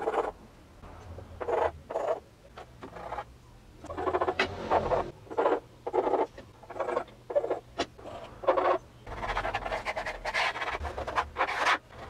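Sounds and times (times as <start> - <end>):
pencil scratching on board: 3.9 - 12.0.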